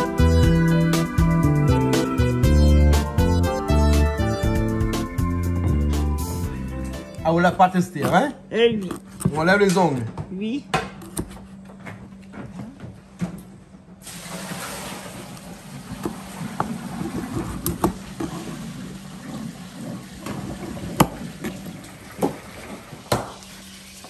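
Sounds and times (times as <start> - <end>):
steady hum and hiss: 6.9 - 24.0.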